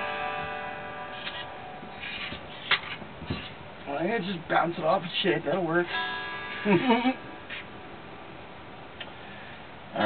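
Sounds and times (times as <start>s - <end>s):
guitar strings strummed and ringing: 0.0s - 3.8s, 4.7s - 8.0s.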